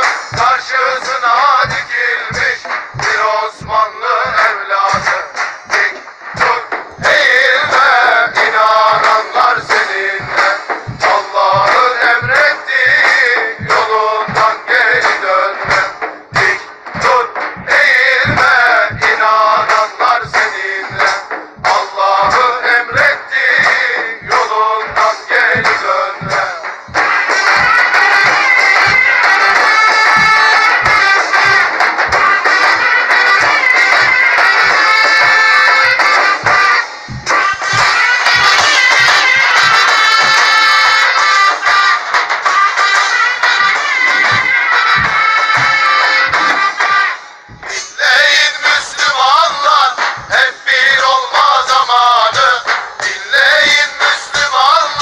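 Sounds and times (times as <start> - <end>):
drumbeat: 0.0 - 55.0
instrumental music: 0.0 - 55.0
person singing: 0.3 - 41.8, 44.1 - 55.0.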